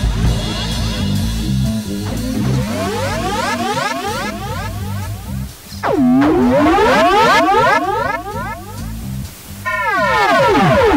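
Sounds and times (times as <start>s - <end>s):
low repeating pulse: 1.7s - 10.9s
theremin-like sliding tones: 2.3s - 10.9s.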